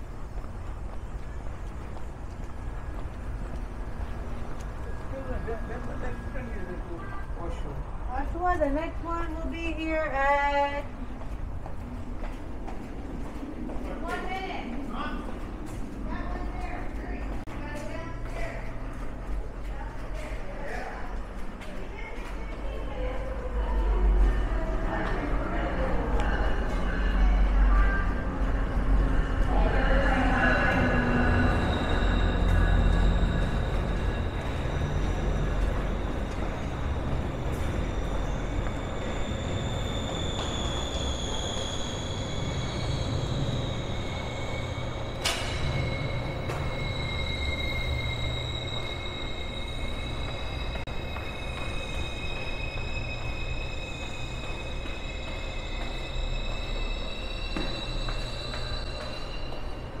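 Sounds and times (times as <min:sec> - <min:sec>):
low train rumble: 0:00.0 - 1:00.0
train wheels squealing: 0:02.8 - 0:08.3, 0:22.7 - 1:00.0.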